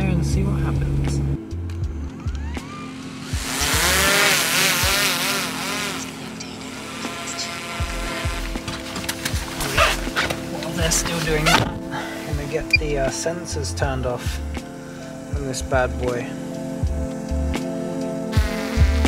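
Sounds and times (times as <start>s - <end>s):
drone propellers whining: 2.0s - 10.4s.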